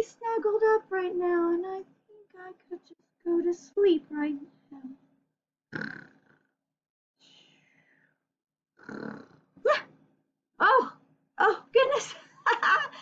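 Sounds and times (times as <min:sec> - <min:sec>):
woman faking snores: 0:08.8 - 0:09.8.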